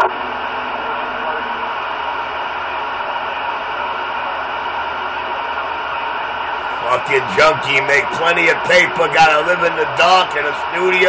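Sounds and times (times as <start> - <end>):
radio static hiss: 6.6 - 11.0.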